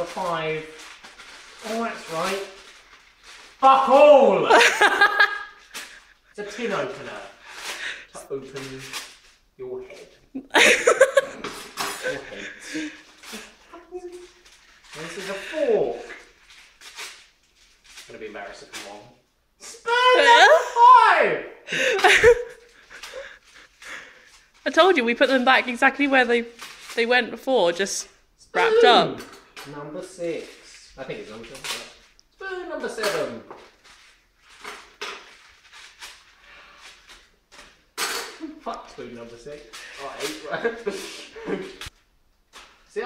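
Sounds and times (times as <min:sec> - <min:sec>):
newspaper crinkling: 0:00.0 - 0:04.0, 0:04.9 - 0:09.4, 0:11.1 - 0:19.0, 0:22.5 - 0:27.2, 0:33.2 - 0:37.8.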